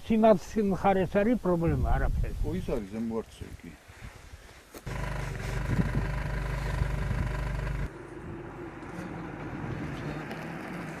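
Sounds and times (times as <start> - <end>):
engine-like hum: 4.9 - 11.0.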